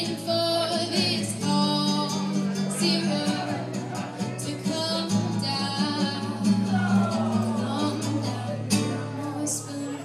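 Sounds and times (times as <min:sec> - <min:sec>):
acoustic guitar strumming: 0:00.0 - 0:09.8
woman singing: 0:00.0 - 0:10.0.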